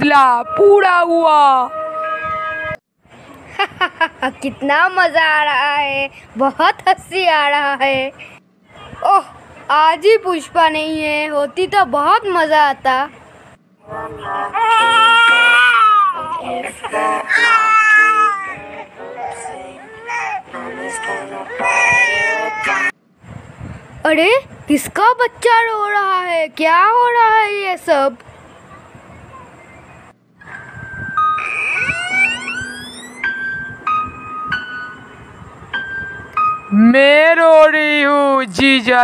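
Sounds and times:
baby crying: 0:14.4 - 0:16.4, 0:17.2 - 0:22.9
gliding tones: 0:30.4 - 0:36.4.

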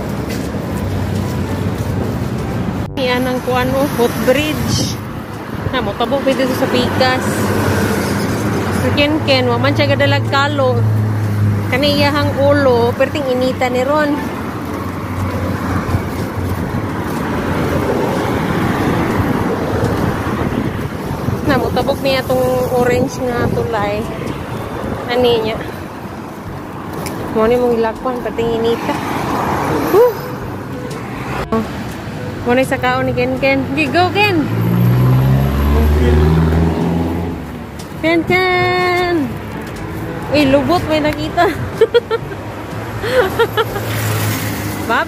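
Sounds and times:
highway traffic: 0:00.0 - 0:45.0
vehicle passing by: 0:00.0 - 0:45.0.

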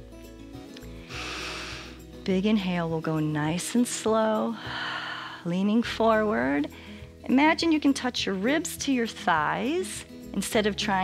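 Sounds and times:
soft background music: 0:00.0 - 0:11.0
woman breathing in through nose: 0:00.8 - 0:02.1, 0:04.6 - 0:05.5, 0:06.7 - 0:07.2.

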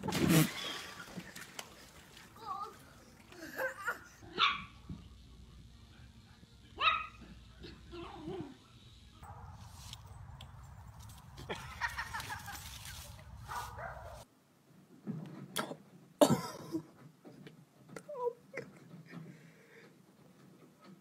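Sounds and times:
dog barking and yipping: 0:04.2 - 0:04.8, 0:06.8 - 0:07.4, 0:13.4 - 0:14.3.

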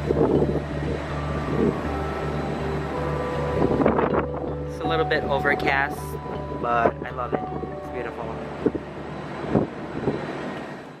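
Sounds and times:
distant traffic: 0:00.0 - 0:11.0.

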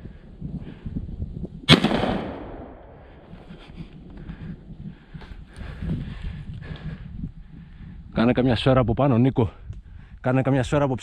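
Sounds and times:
shotgun shot with echo: 0:01.7 - 0:03.0.

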